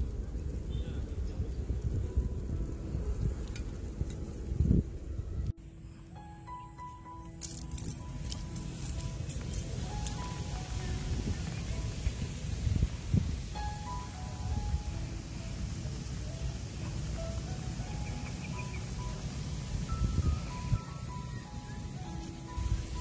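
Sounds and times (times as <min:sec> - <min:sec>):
wind rumbling on microphone: 0:00.0 - 0:05.6, 0:07.6 - 0:23.0
high-note melody with clinking: 0:06.2 - 0:23.0.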